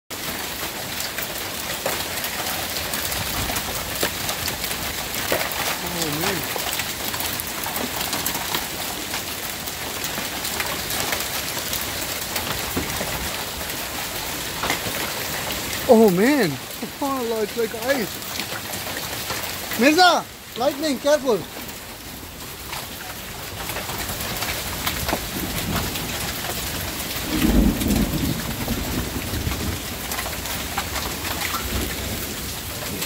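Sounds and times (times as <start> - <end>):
hailstones ticking on surfaces: 0.1 - 33.0
heavy rain: 0.1 - 33.0.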